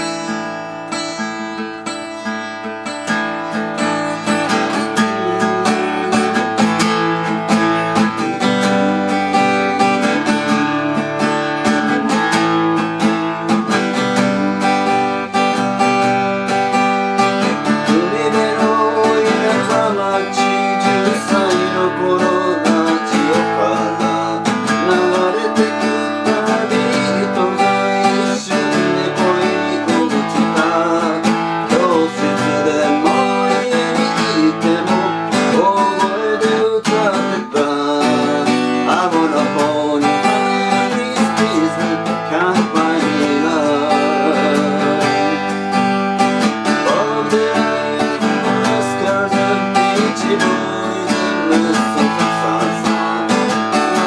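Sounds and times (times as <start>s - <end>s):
acoustic guitar strummed and picked: 0.0s - 54.0s.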